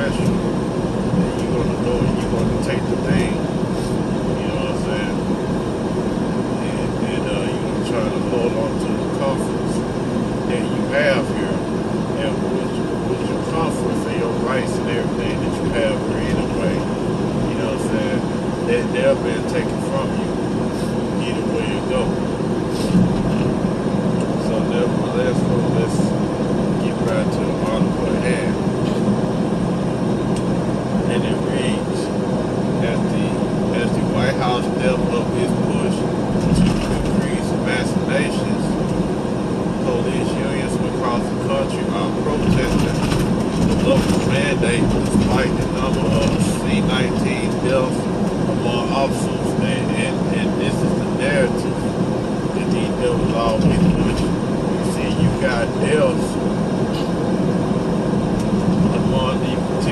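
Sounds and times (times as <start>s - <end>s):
road noise: 0.0s - 59.9s
truck engine drone: 0.0s - 59.9s.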